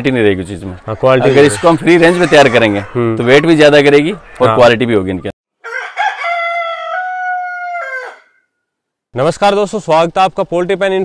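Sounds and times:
rooster crowing: 0:05.6 - 0:08.6.

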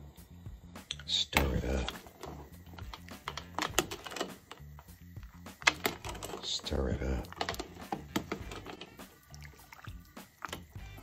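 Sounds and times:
background music with bass line: 0:00.0 - 0:11.0
utensil clicking against steel pot: 0:00.8 - 0:11.0.

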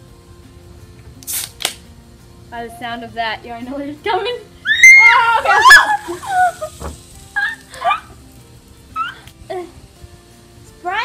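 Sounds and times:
faint background music: 0:00.0 - 0:11.0
girl laughing: 0:04.7 - 0:08.2, 0:09.0 - 0:09.8.

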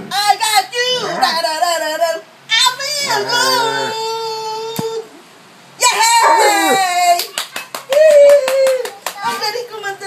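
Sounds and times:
dog howling: 0:06.2 - 0:06.8
quick hand claps: 0:07.2 - 0:09.3.

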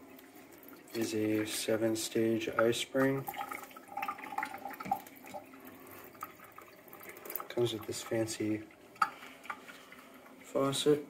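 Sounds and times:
water stream splashing into metal sink: 0:00.0 - 0:10.7.

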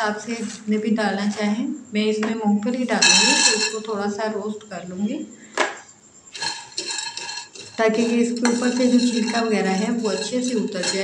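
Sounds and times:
nuts scraping and rattling in pan: 0:03.0 - 0:03.9, 0:06.3 - 0:11.0.

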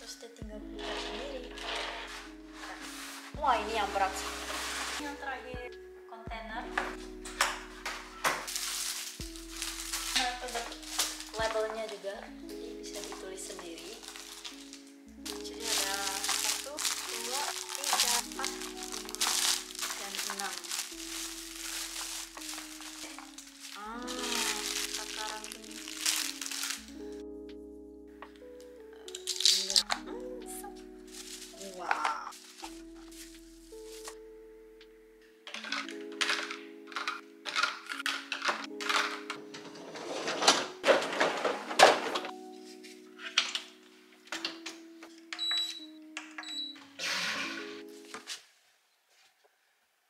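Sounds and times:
plastic wrapping crinkling: 0:00.7 - 0:05.3, 0:06.9 - 0:27.3, 0:28.4 - 0:34.2, 0:35.5 - 0:43.9.

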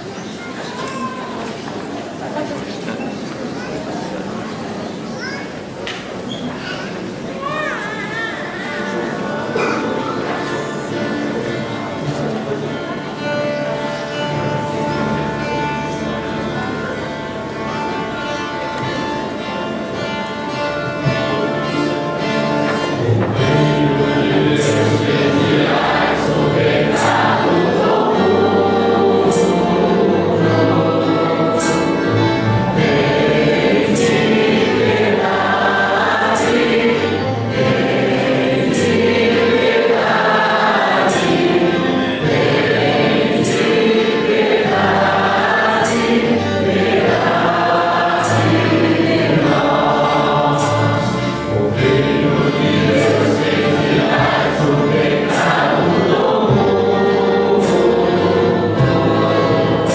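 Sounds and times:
choir singing a hymn: 0:08.6 - 0:59.9.

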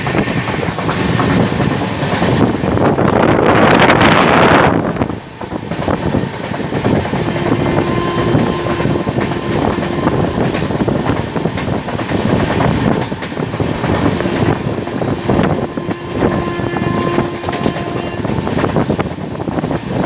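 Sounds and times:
train wheels clattering over rails: 0:00.0 - 0:20.0
wind rushing on microphone: 0:00.0 - 0:20.0.

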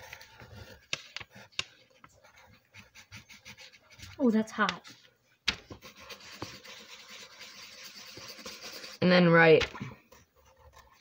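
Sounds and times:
pencil scratching on paper: 0:00.0 - 0:11.0.

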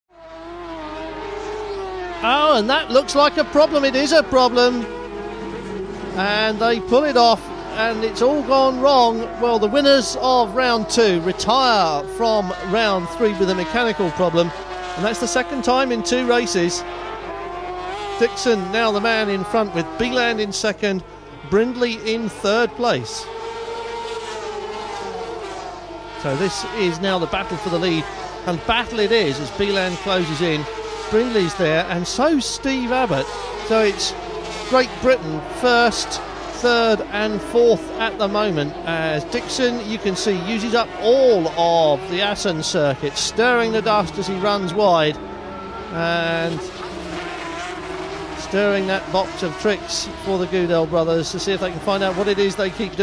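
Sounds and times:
two-stroke engines at high revs: 0:00.1 - 0:53.0.

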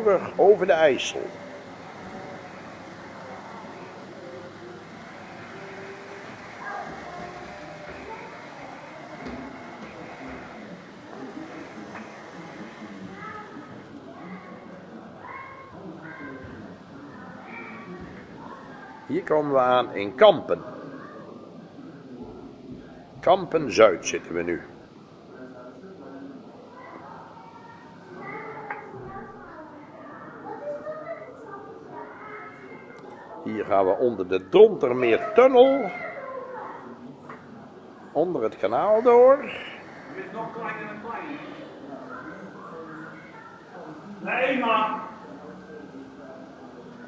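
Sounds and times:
murmur of voices: 0:00.0 - 0:47.0
steady indoor din: 0:00.0 - 0:47.0.

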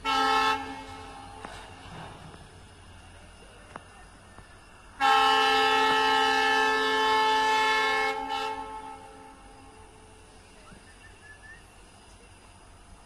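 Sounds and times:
locomotive horn blast: 0:00.0 - 0:01.4, 0:05.0 - 0:09.7.

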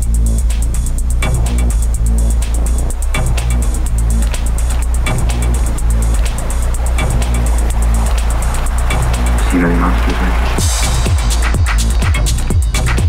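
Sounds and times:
deep sustained bass: 0:00.0 - 0:13.0
techno beat: 0:00.0 - 0:13.0
ticking hi-hats: 0:00.0 - 0:13.0.

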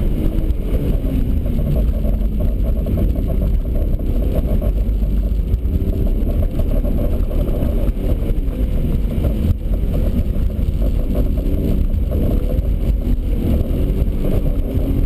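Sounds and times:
car engine driven hard: 0:00.0 - 0:15.0.

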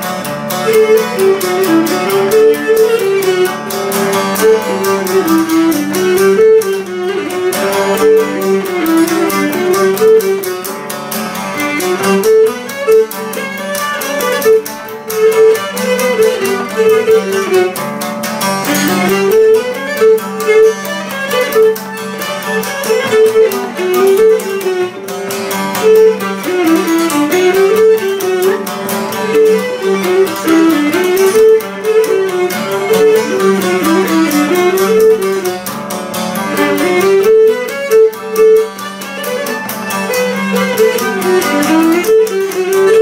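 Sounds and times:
bowed lyra folk melody: 0:00.0 - 0:43.0
strummed lute: 0:00.0 - 0:43.0.

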